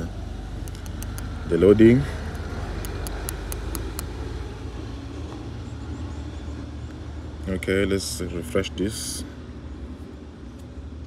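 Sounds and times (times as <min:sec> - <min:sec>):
low background hum and rumble: 0:00.0 - 0:11.0.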